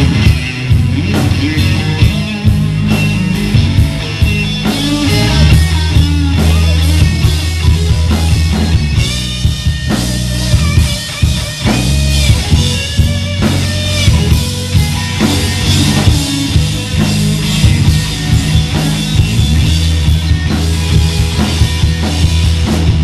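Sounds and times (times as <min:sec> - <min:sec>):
heavy bass line: 0:00.0 - 0:23.0
live rock band playing: 0:00.0 - 0:23.0.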